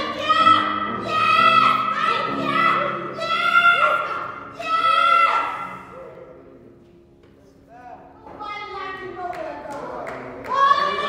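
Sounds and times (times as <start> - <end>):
low accompaniment tones: 0.0 - 11.0.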